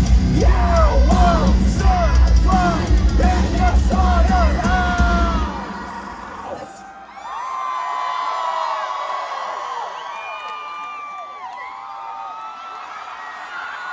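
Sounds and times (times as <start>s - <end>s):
heavy metal band playing live: 0.0s - 6.1s
crowd cheering and screaming: 0.0s - 13.9s.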